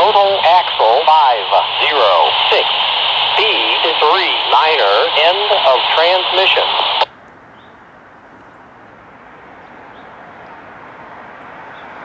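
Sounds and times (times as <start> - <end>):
scanner radio: 0.0 - 7.1.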